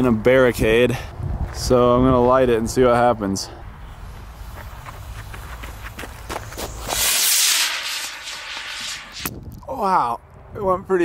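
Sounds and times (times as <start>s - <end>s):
footsteps running on gravel: 4.1s - 6.9s
model rocket launching hiss: 6.6s - 9.4s.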